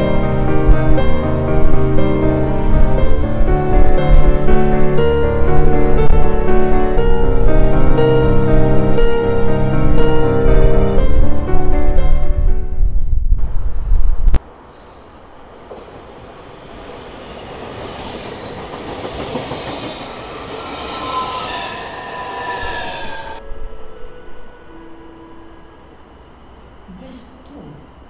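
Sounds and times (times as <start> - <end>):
loud low rumble: 0.0 - 14.4
electric train passing: 0.0 - 28.0
thin metallic squeals: 20.5 - 23.4.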